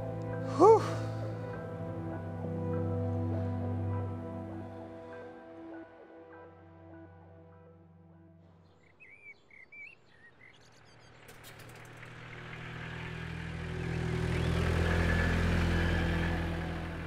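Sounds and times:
bird chirps: 8.6s - 11.3s
vehicle passing: 11.0s - 17.0s.

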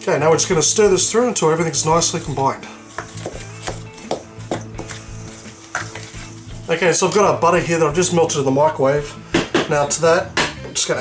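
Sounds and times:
background music: 0.0s - 11.0s
spoon stirring dry flour in bowl: 1.7s - 6.8s
spoon scraping and knocking bowl: 2.9s - 6.4s.

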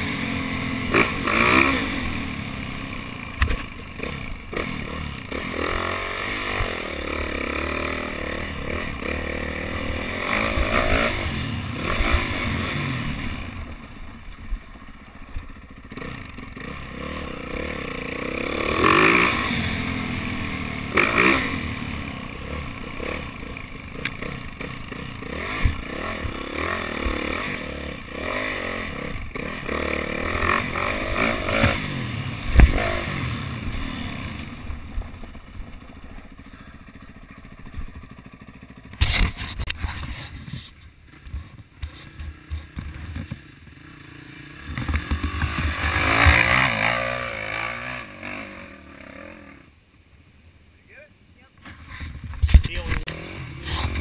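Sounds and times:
dirt bike engine revving: 0.0s - 49.9s, 51.6s - 54.0s
sharp thump: 32.5s - 32.9s.

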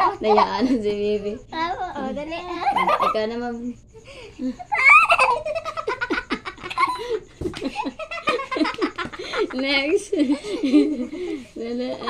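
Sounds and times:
girl laughing: 2.4s - 3.2s, 4.2s - 11.9s.

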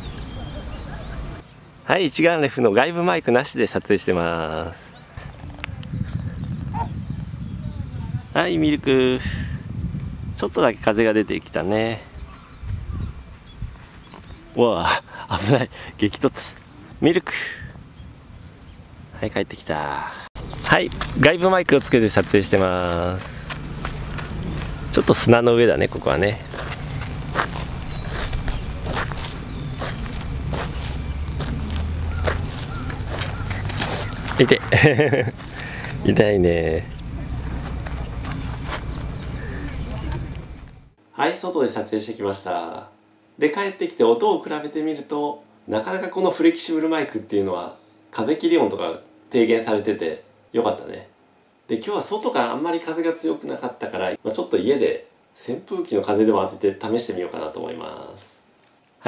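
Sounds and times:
wind buffeting microphone: 5.2s - 14.6s, 17.6s - 19.2s, 20.4s - 40.9s
footsteps on sandy ground: 12.2s - 14.5s, 20.4s - 36.4s, 37.0s - 40.9s.

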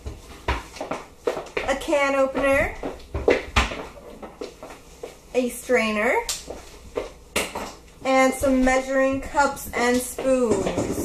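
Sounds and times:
person speaking: 1.7s - 2.9s, 8.0s - 11.0s.

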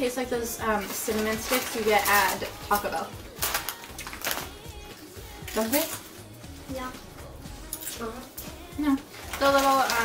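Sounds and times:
faint background music: 0.0s - 10.0s
chips being chewed: 1.3s - 4.6s.

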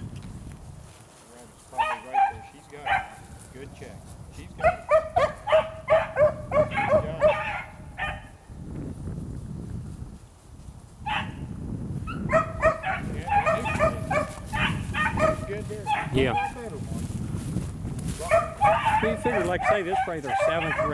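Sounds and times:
beagles baying: 1.7s - 3.4s, 4.6s - 8.4s, 12.1s - 16.6s, 18.2s - 20.9s.

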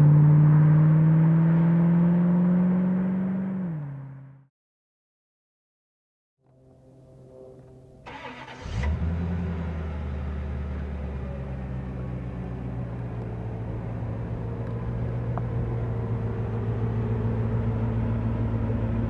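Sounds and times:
car engine starting and idling: 8.0s - 19.0s.

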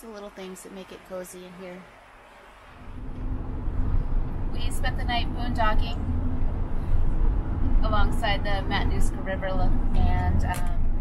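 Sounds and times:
engine and road rumble inside vehicle: 2.7s - 11.0s.

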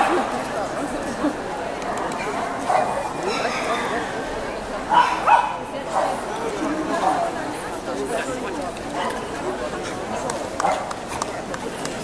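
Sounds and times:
crowd chatter: 0.0s - 12.0s
dog barking: 4.9s - 6.1s.

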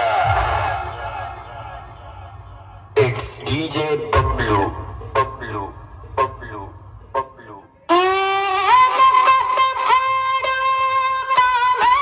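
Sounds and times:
low bass hit: 0.2s - 7.9s
voice over loudspeakers: 3.0s - 12.0s.

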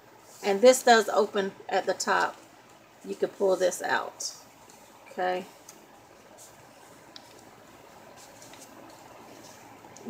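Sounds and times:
low steady hiss: 0.0s - 10.0s
paper pages rustling: 6.4s - 7.5s, 8.1s - 9.7s.

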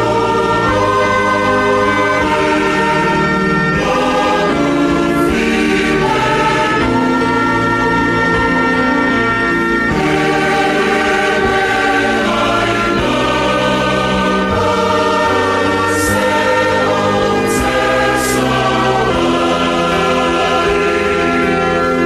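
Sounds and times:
choir singing a hymn: 0.0s - 22.0s.

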